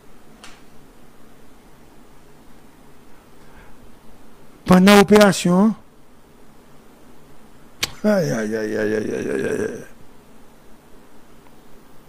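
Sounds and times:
man's voice: 0:07.8 - 0:09.9.

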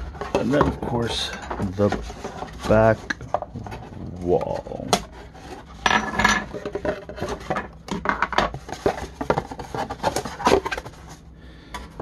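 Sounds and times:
cardboard packaging rustling: 0:00.0 - 0:05.8, 0:08.5 - 0:11.3.

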